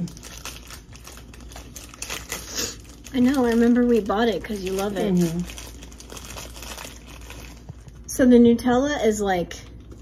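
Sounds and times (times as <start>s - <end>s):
food packaging crinkling: 0.0s - 8.2s.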